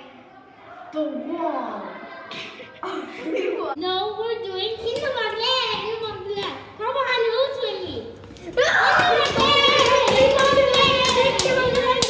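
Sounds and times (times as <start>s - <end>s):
hand claps and slaps: 8.9s - 12.0s.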